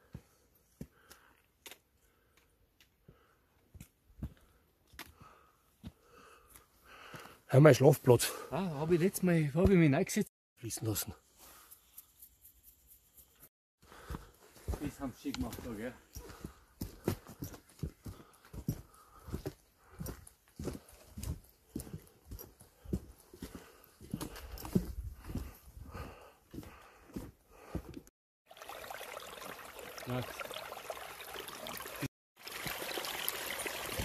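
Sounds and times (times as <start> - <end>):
footsteps on wooden boards: 14.0 - 28.1.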